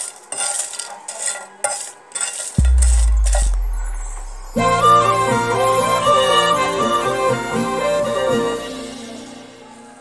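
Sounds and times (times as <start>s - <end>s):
dry chillies rustling: 0.0s - 2.6s
utensil scraping iron pan: 0.0s - 3.6s.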